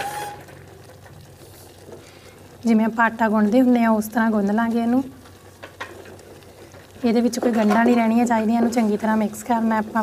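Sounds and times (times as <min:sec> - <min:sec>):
spatula stirring dough in metal pan: 0:05.5 - 0:10.0.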